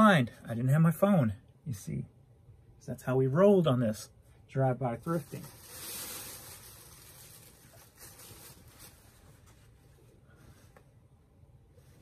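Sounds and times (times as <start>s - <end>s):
cloth rustling: 5.1s - 11.1s, 11.7s - 12.0s.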